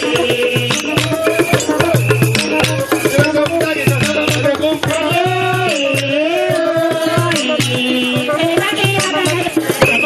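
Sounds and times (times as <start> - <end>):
drums beating: 0.0 - 10.0.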